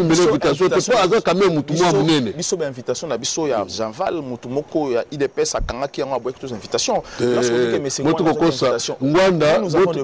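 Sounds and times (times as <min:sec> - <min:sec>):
men talking: 0:00.0 - 0:10.0
man holding drawn-out vowel: 0:07.1 - 0:08.2.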